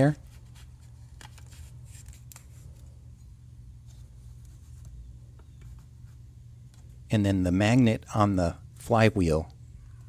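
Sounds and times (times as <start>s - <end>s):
low steady hum: 0.0s - 10.0s
paper card clicks and rustles: 0.3s - 2.9s.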